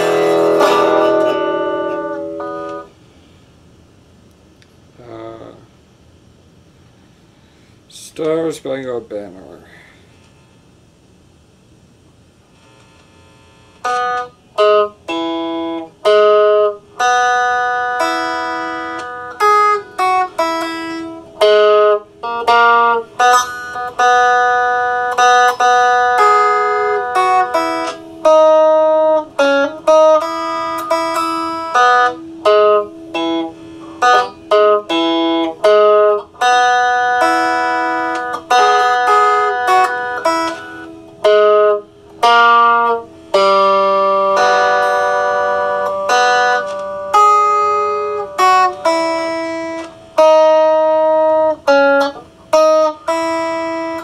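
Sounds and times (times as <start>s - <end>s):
clean electric guitar melody: 0.0s - 2.9s, 13.8s - 54.0s.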